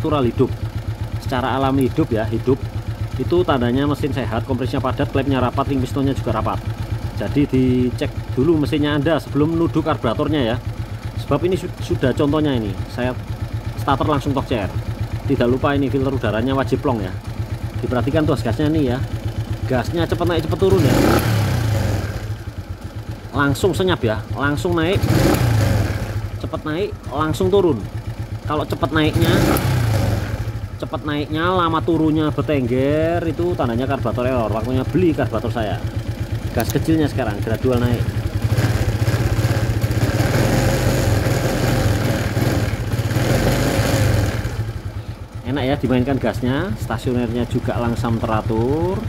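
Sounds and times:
scooter engine revving: 0.1s - 46.1s.

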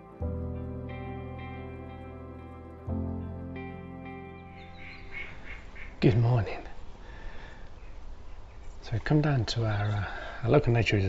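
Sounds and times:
background music: 0.0s - 5.8s
duck quacking: 4.8s - 6.0s.

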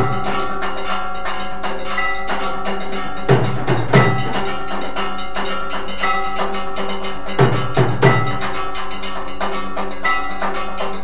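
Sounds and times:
bells ringing rapidly: 0.0s - 11.0s
percussion: 0.0s - 11.0s.

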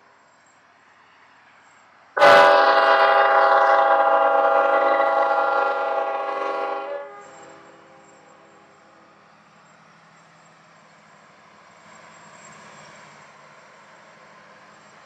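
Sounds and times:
faint train rumble: 0.0s - 15.0s
locomotive air horn blast: 2.2s - 8.1s.

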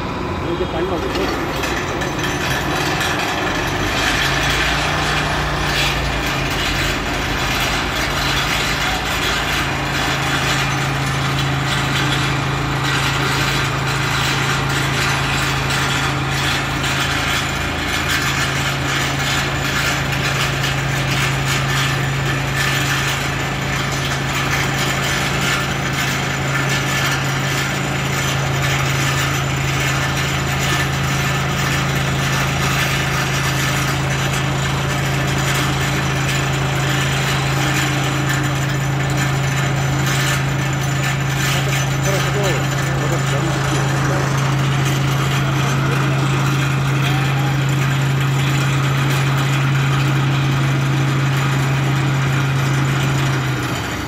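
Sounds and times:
piling rig driving pile: 0.0s - 54.0s.

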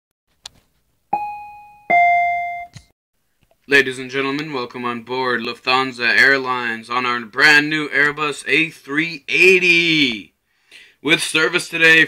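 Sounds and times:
two-note ding-dong chime: 1.2s - 2.9s.

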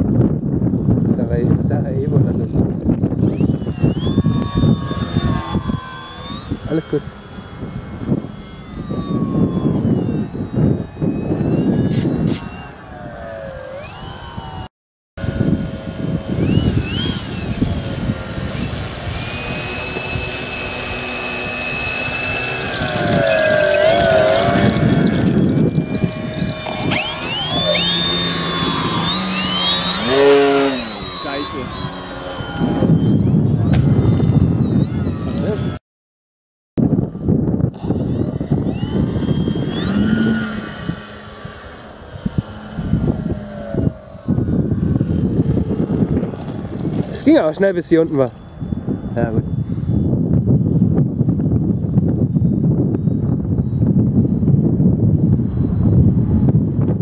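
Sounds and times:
wind rumble on microphone: 0.0s - 35.8s, 36.8s - 57.0s
model plane motor whining: 1.6s - 35.8s, 36.8s - 57.0s.

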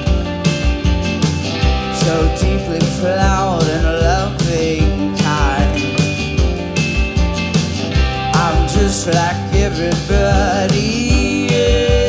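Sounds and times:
electric guitar: 0.0s - 12.0s
steady drum beat: 0.0s - 12.0s
strummed acoustic guitar: 0.0s - 12.0s
woman singing lead vocal: 2.0s - 6.0s, 8.4s - 12.0s.

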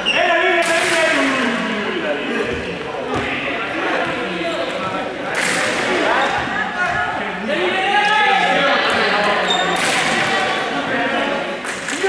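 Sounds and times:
young people shouting: 5.9s - 11.3s.

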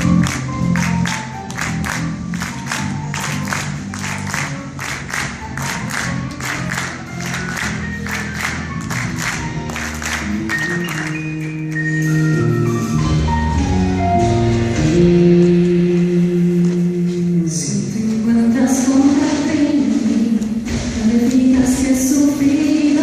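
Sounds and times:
bass notes: 0.0s - 22.9s
keyboard: 0.0s - 23.0s.

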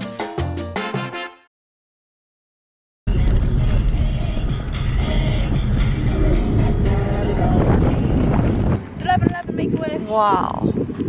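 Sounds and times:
music playing: 0.0s - 1.5s, 3.1s - 8.8s
car engine and road rumble: 3.1s - 10.0s.

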